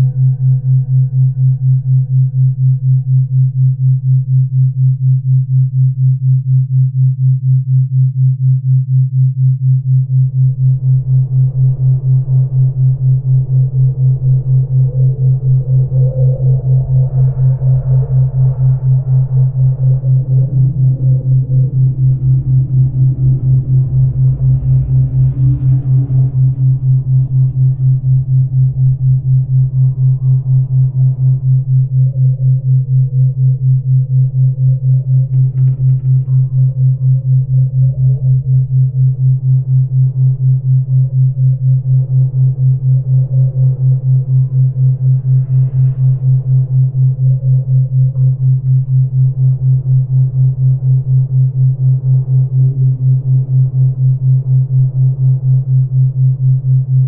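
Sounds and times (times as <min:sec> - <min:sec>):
ambient synthesizer pad: 0:00.0 - 0:03.0, 0:10.5 - 0:57.0
pulsing low hum: 0:00.0 - 0:57.0.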